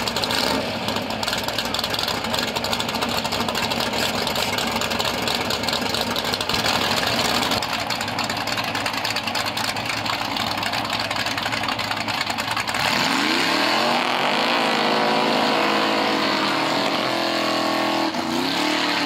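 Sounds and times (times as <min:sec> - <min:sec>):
tyres spinning in a burnout: 0:00.0 - 0:19.0
car engine revving: 0:12.6 - 0:19.0.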